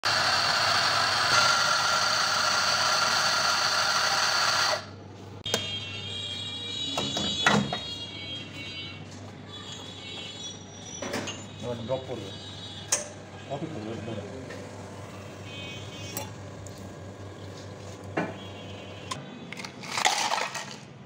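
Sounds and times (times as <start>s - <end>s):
coffee grinder grinding: 0.0s - 4.9s.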